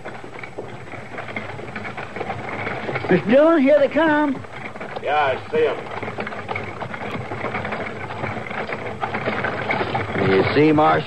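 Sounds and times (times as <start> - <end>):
hoofbeats clattering: 0.0 - 11.0.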